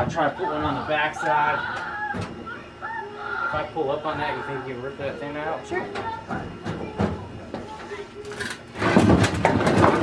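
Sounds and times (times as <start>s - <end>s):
wood cracking and scraping: 8.3s - 10.0s.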